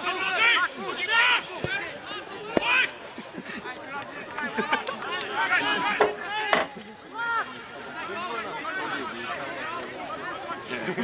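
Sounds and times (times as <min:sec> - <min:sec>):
players calling and shouting: 0:00.0 - 0:11.0.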